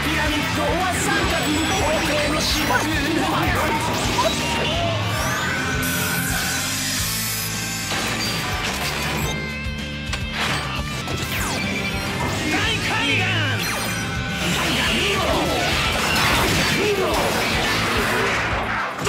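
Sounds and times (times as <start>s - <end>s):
action background music: 0.0s - 19.0s.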